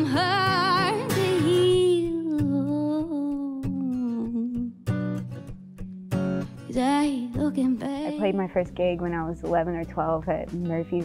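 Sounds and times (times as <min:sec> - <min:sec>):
woman singing a long note: 0:00.0 - 0:04.8
guitar strums: 0:00.0 - 0:11.0.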